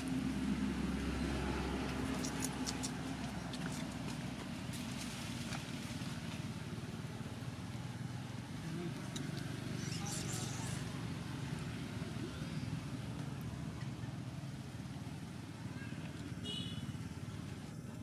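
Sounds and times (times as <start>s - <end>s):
low outdoor background rumble: 0.0s - 18.0s.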